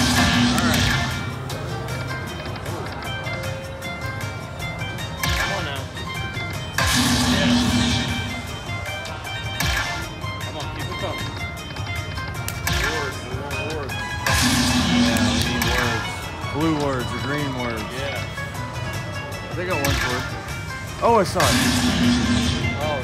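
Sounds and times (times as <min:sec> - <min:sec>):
slot machine sound effect hits: 0:00.0 - 0:01.4, 0:05.2 - 0:05.8, 0:06.7 - 0:10.2, 0:12.6 - 0:13.3, 0:14.2 - 0:16.7, 0:19.6 - 0:23.0
slot machine bonus music: 0:00.0 - 0:23.0.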